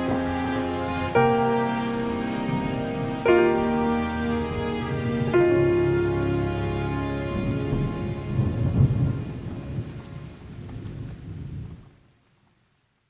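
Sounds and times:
piano and string notes: 0:00.0 - 0:10.9
rolling thunder: 0:00.0 - 0:12.1
rain: 0:00.0 - 0:13.0.

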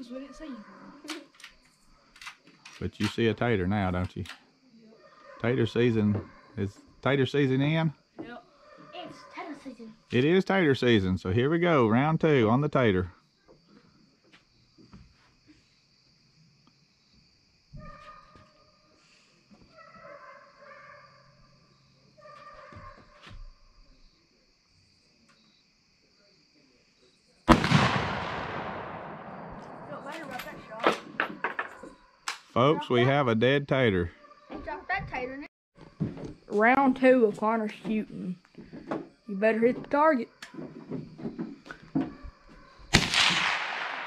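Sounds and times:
rifle shot echoing: 0:27.5 - 0:30.4, 0:42.9 - 0:44.0.

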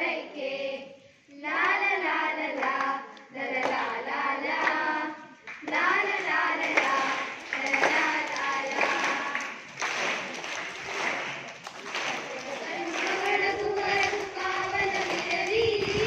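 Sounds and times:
children singing in chorus: 0:00.0 - 0:10.0, 0:12.2 - 0:16.0
hand claps: 0:02.6 - 0:03.0, 0:03.6 - 0:04.0, 0:04.6 - 0:16.0.

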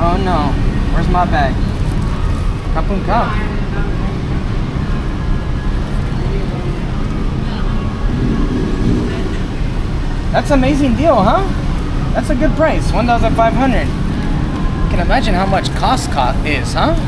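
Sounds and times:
crowd hubbub: 0:00.0 - 0:17.0
road traffic rumble: 0:00.0 - 0:17.0.

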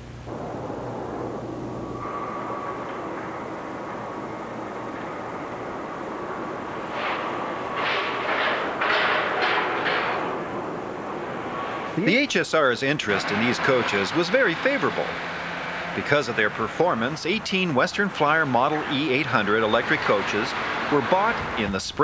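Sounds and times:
traffic rumble: 0:00.0 - 0:22.0.

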